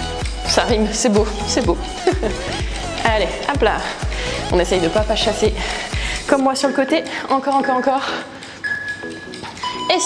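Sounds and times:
workout music: 0.0 - 10.0.

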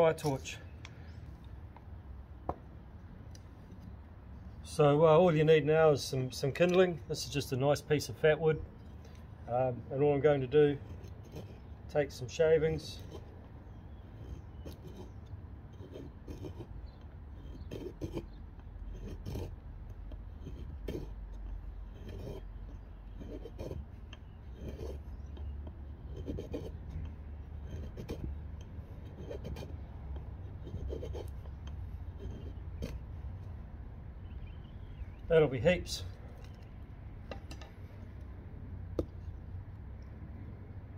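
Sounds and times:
knife scraping wood: 10.7 - 12.2, 12.8 - 33.2.

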